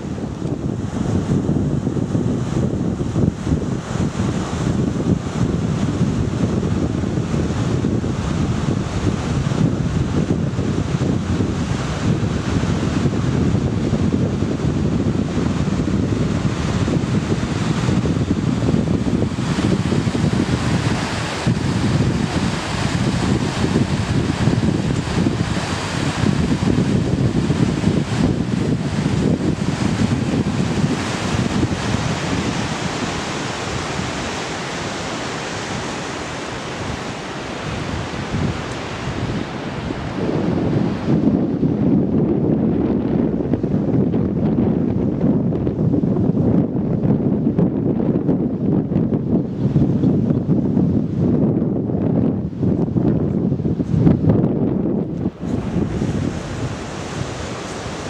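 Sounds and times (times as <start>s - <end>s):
wind on microphone: 0.0s - 58.0s
river rushing over rocks: 16.2s - 41.1s, 55.4s - 58.0s.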